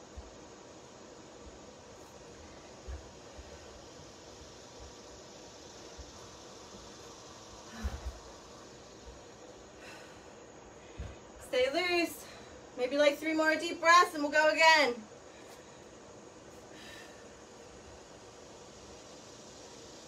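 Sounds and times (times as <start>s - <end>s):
steady low hiss: 0.0s - 20.0s
woman breathing deeply: 7.6s - 8.7s, 9.6s - 11.4s, 15.2s - 17.8s.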